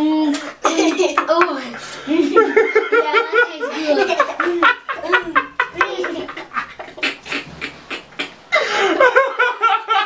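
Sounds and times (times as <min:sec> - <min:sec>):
boys laughing: 0:00.6 - 0:10.0.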